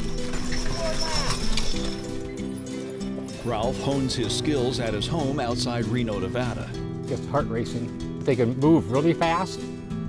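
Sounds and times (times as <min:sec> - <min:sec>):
mule hoofbeats trotting: 0:00.0 - 0:03.0
background music: 0:00.0 - 0:10.0.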